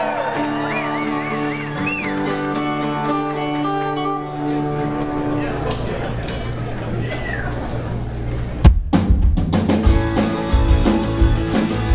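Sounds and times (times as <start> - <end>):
crowd whistling: 0.0 - 2.9
guitars playing rock: 0.0 - 5.5, 9.4 - 11.9.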